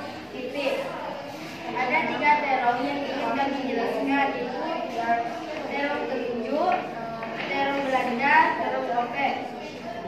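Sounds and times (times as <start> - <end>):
girl reading aloud with echo: 0.0 - 10.0.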